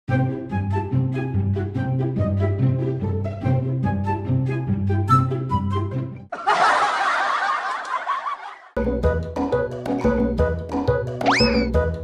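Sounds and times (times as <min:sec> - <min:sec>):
background music: 0:00.1 - 0:06.3, 0:08.8 - 0:12.0.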